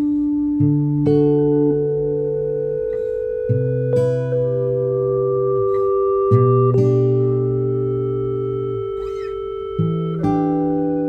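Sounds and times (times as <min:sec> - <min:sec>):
acoustic guitar notes ringing: 0:00.0 - 0:11.0
faint wavering high sound: 0:02.5 - 0:11.0.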